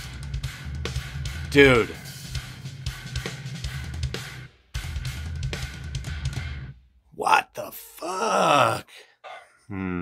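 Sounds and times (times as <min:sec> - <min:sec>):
drum kit playing: 0:00.0 - 0:06.4
progressive metal music: 0:00.0 - 0:06.7.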